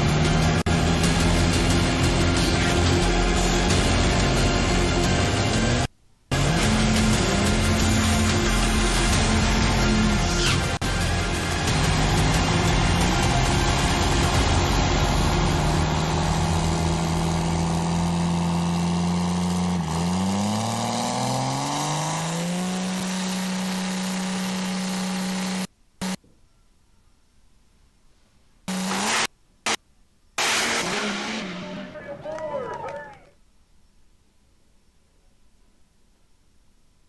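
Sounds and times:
diesel engine revving: 0.0 - 26.2, 28.7 - 29.8, 30.4 - 32.2.

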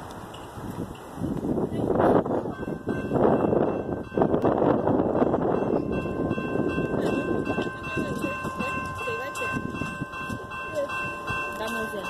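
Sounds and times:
wind buffeting microphone: 0.0 - 12.0
railroad crossing bell ringing: 1.8 - 12.0.

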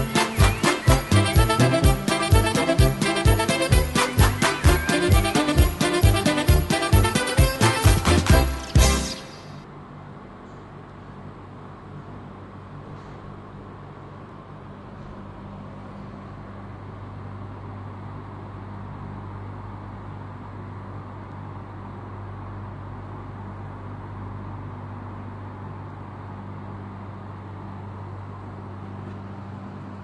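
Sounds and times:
electric fan whirring: 0.0 - 30.0.

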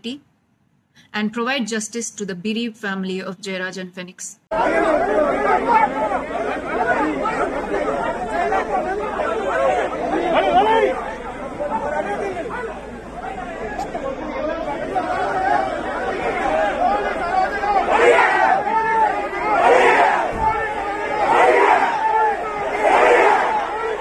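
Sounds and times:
crowd talking and shouting: 4.5 - 24.0.

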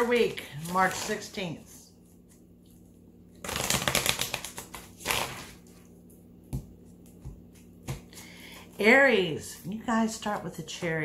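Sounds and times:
cards being shuffled: 3.4 - 5.8.

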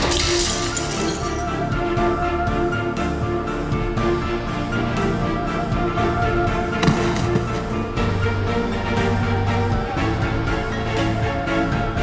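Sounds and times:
glass shards tinkling: 0.0 - 1.5
glass vase smashing: 0.0 - 1.5
dramatic background music: 0.0 - 12.0.

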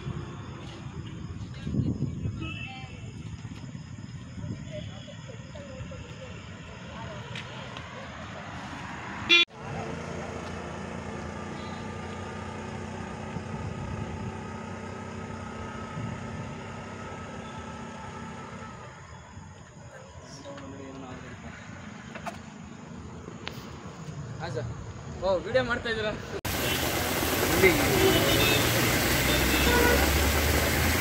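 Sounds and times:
road traffic passing: 0.0 - 2.3, 2.9 - 31.0.

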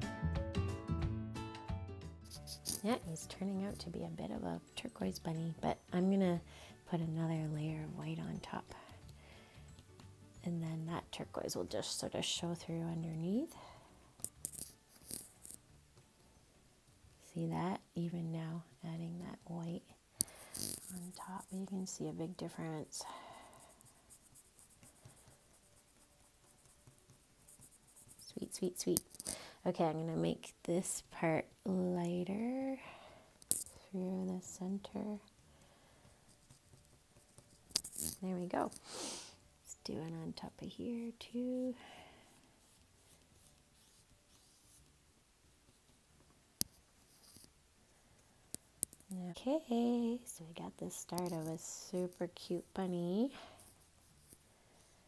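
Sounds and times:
paintbrush scratching on paper: 2.3 - 4.0, 20.3 - 29.3, 36.0 - 38.9, 42.2 - 45.0, 46.7 - 47.5, 50.8 - 55.0.

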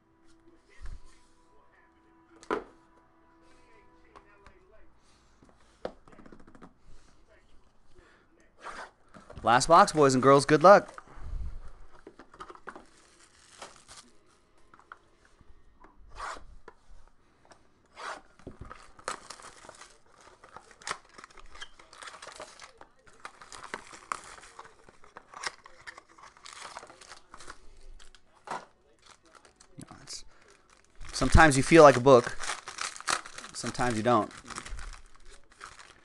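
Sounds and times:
plastic wrap crinkling: 11.8 - 15.0, 18.5 - 36.0.

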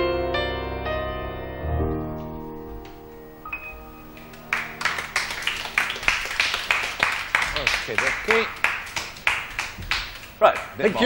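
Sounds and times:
piano chord: 0.0 - 8.7
audience applauding: 3.6 - 11.0
voice: 10.4 - 11.0.

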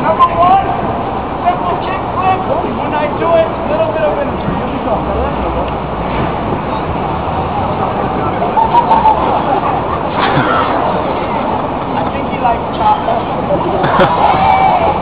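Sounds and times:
city street traffic: 0.0 - 15.0
crowd voices: 0.0 - 15.0.

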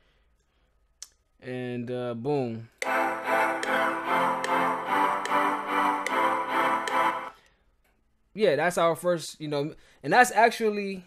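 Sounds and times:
synth chord progression: 2.8 - 7.4.

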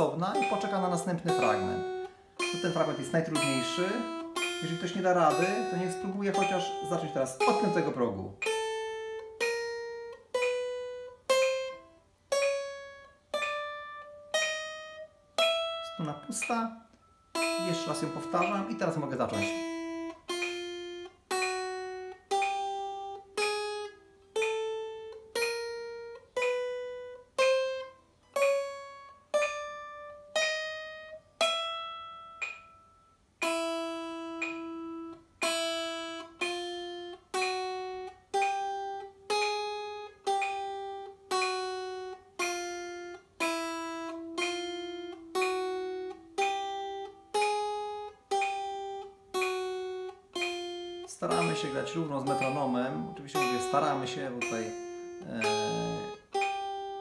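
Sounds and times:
acoustic guitar single notes picked: 0.0 - 57.0.

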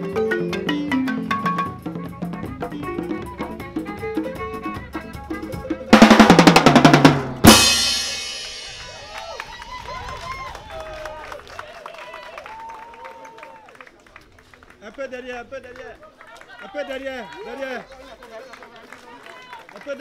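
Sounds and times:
balafon: 0.0 - 9.2
drums playing: 0.0 - 10.1
fast drum kit roll: 1.2 - 10.6
cymbal crash: 7.1 - 9.7.

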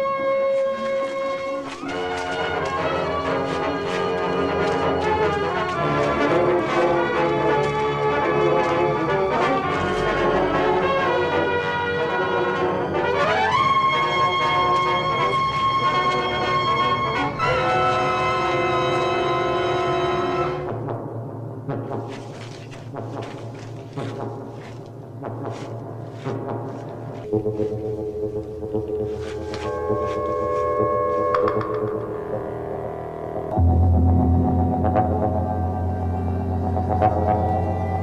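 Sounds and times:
brass chords: 0.0 - 38.0
film score music: 0.0 - 38.0.

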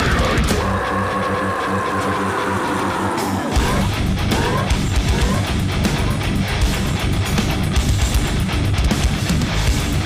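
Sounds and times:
live heavy metal music: 0.0 - 10.0.

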